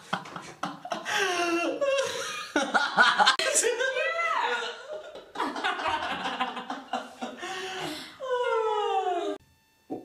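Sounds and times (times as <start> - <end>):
people laughing: 0.0 - 9.4.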